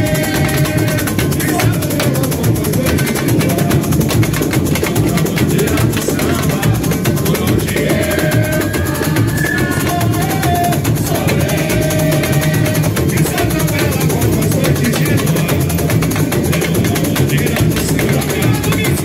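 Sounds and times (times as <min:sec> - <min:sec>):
samba drums: 0:00.0 - 0:19.0
person singing into microphone: 0:05.0 - 0:15.6.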